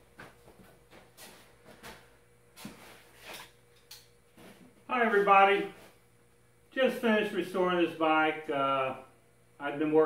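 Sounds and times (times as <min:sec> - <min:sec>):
faint footsteps: 0:00.0 - 0:03.4
faint steady hum: 0:00.0 - 0:10.0.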